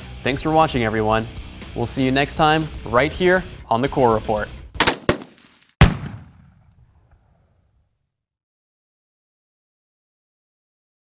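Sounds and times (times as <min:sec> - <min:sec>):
deep shot-like hit ringing: 0:04.8 - 0:06.8
short sharp crack: 0:04.8 - 0:07.2.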